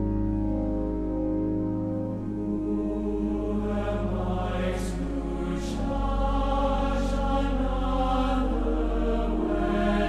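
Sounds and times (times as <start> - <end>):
pipe organ: 0.0 - 10.0
large choir singing: 2.3 - 10.0.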